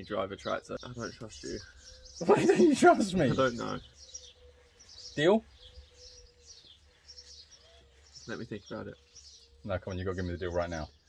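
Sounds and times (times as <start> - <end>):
faint birds chirping: 0.0 - 11.0.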